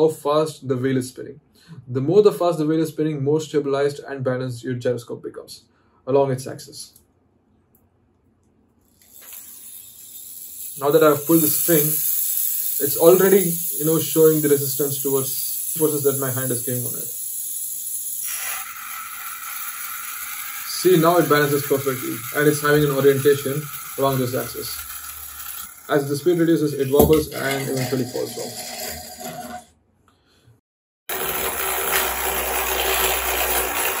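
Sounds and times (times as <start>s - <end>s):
toy gyroscope whirring: 8.8s - 29.7s, 31.1s - 34.0s.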